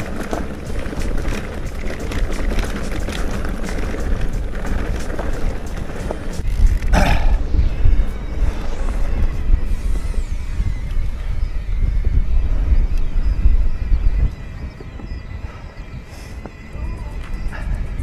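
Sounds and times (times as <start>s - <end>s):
bike rattling over ground: 0.0s - 15.6s
wind buffeting microphone: 0.0s - 18.0s.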